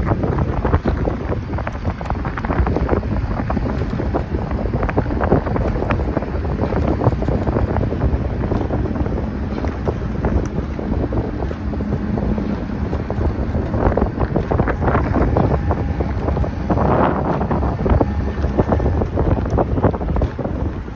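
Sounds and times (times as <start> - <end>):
rushing water: 0.0 - 20.9
water splashing: 0.0 - 20.9
wind buffeting microphone: 0.0 - 20.9.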